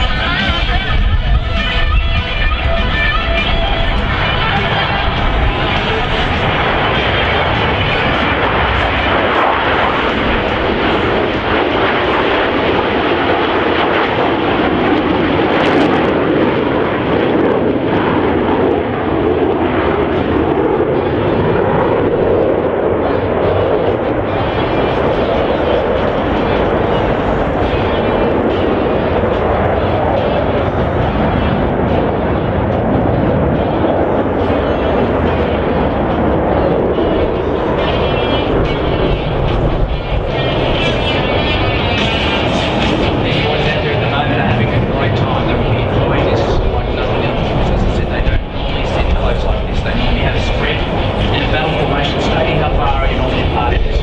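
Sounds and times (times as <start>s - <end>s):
jet engines roaring overhead: 0.0s - 54.0s.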